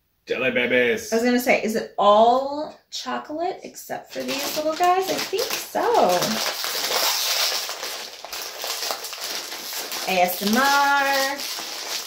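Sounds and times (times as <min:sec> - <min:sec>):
plastic bag crinkling: 0:04.1 - 0:12.0.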